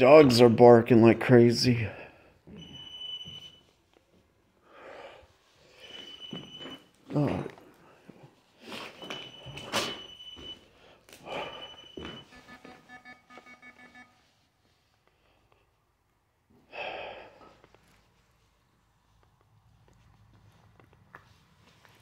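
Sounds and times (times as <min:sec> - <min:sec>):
high electronic beep: 0:11.4 - 0:14.2.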